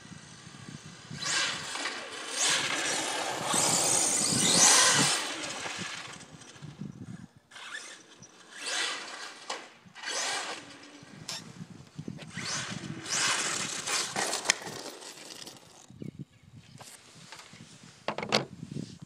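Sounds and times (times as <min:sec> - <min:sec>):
toy car motor whine: 0:00.0 - 0:06.8, 0:07.5 - 0:11.5, 0:12.2 - 0:15.9
tyre noise on asphalt: 0:01.2 - 0:16.0.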